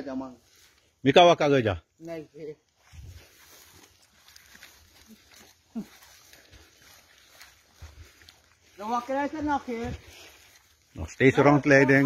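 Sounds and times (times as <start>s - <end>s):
footsteps through grass: 0.0s - 12.0s.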